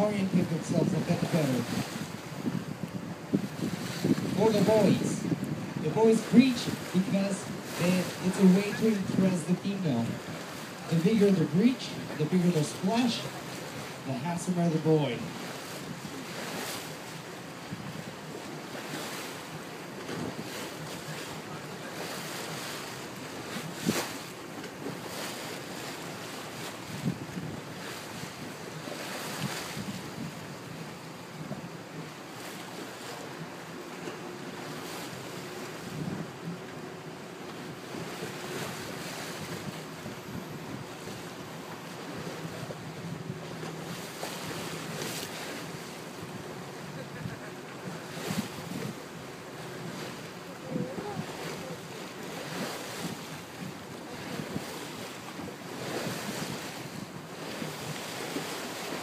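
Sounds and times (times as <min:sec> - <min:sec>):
wind buffeting microphone: 0:00.0 - 0:12.3, 0:15.3 - 0:59.0
sea water wash: 0:00.0 - 0:59.0.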